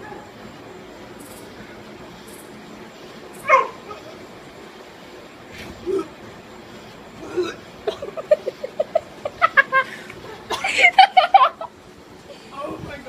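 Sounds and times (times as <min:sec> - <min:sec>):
steady background hiss: 0:00.0 - 0:13.0.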